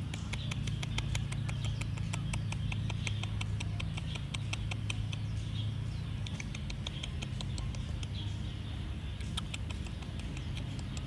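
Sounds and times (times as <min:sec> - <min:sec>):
quick light sharp clicks: 0:00.0 - 0:05.4, 0:06.2 - 0:08.3, 0:09.2 - 0:11.0
low steady hum: 0:00.0 - 0:11.0.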